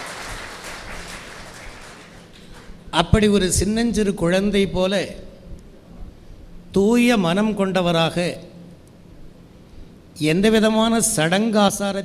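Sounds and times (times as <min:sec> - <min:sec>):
audience applause: 0:00.0 - 0:02.8.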